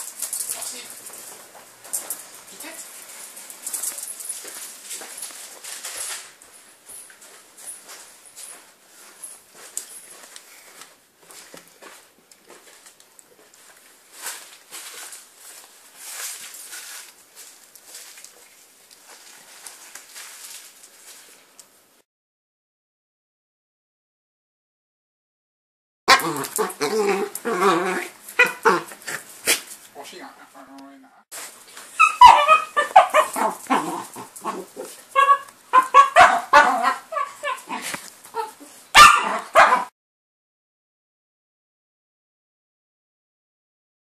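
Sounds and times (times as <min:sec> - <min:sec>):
handheld camera rustle: 0:00.0 - 0:21.8.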